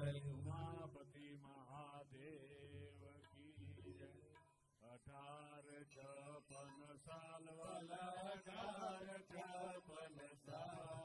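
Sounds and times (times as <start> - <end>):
voices chanting devotional calls: 0.0 - 11.0.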